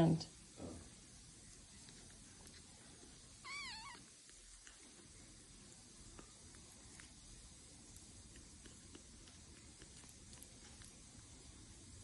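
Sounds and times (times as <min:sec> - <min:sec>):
kitten mewing: 0:03.4 - 0:04.2.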